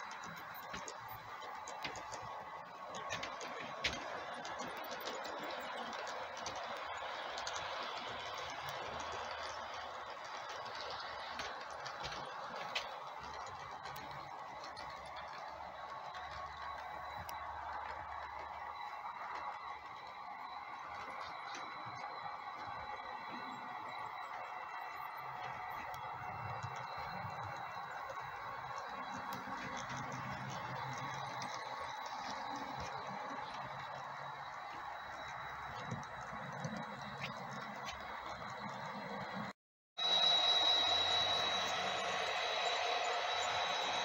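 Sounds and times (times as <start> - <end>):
model train wheels rattling: 0.0 - 44.0.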